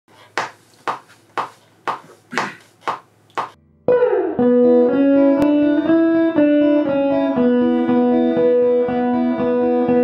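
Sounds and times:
electric guitar note ringing: 3.6 - 10.0.

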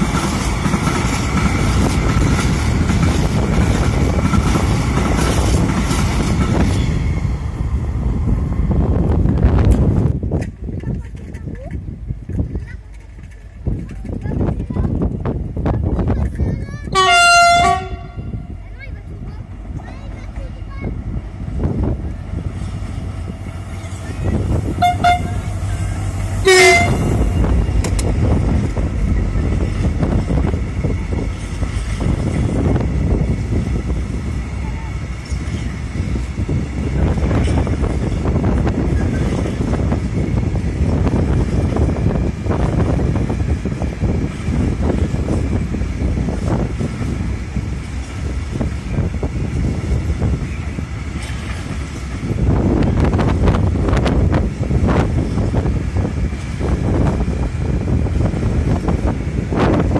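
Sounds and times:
wheels clattering on rails: 0.0 - 7.4, 9.0 - 59.9
train wagons rumbling: 0.0 - 59.9
train horn blasts: 17.0 - 18.5, 24.8 - 25.7, 26.4 - 27.4.

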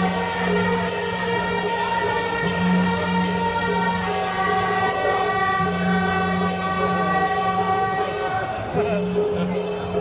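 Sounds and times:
suona reed note: 0.0 - 10.0.

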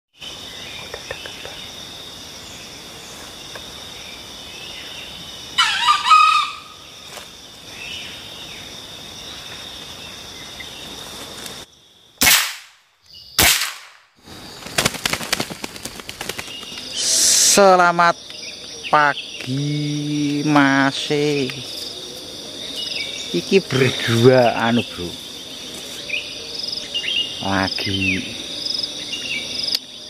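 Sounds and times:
insects droning: 0.1 - 30.0
rooster crowing: 5.6 - 6.8.

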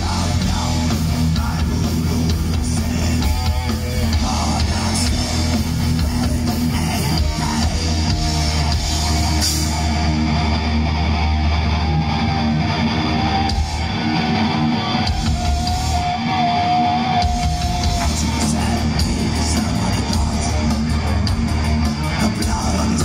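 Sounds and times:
metal band playing live: 0.0 - 23.0.

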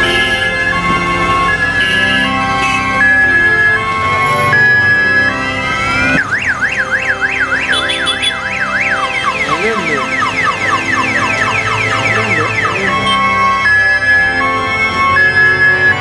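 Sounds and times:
electronic vehicle siren: 0.0 - 16.0
organ music: 0.0 - 16.0.

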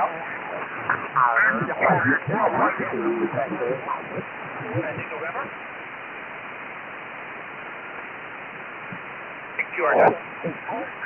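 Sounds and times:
radio voices overlapping: 0.0 - 6.1, 7.6 - 11.0
radio band noise hiss: 0.0 - 11.0.

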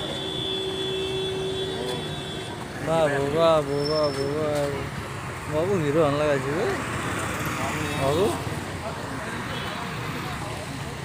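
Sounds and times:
passing motorbikes and cars: 0.0 - 11.0
people talking: 1.7 - 4.9, 5.5 - 6.8, 7.6 - 11.0.

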